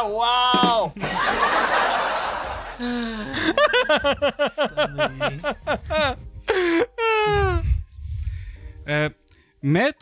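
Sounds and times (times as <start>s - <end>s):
person crying out and wailing: 2.8s - 4.0s, 4.6s - 7.7s.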